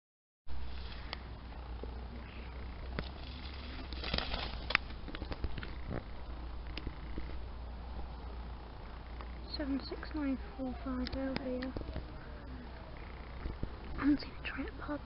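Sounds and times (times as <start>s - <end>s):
wind rumble: 0.5s - 15.0s.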